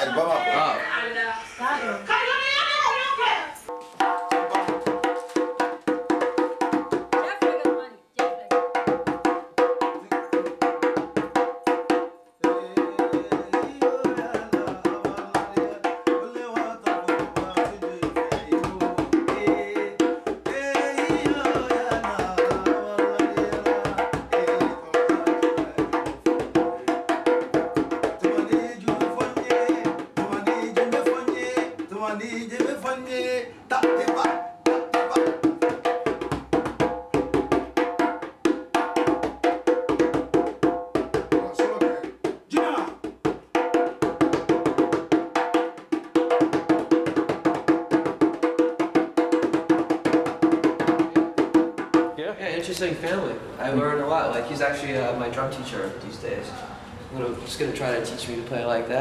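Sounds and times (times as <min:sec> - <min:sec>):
man speaking: 0:00.0 - 0:00.9, 0:52.2 - 0:59.0
djembe played by hand: 0:03.7 - 0:32.8, 0:33.7 - 0:52.2.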